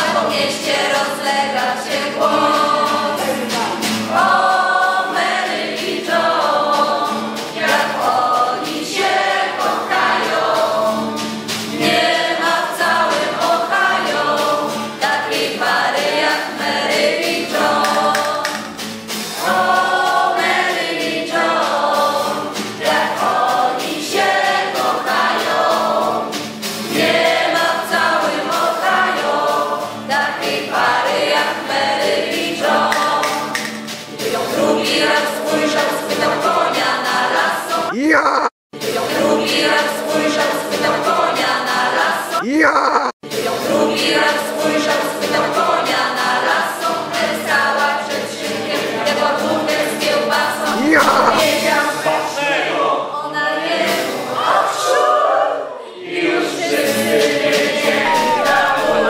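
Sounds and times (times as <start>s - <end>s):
many voices singing: 0.0s - 59.0s.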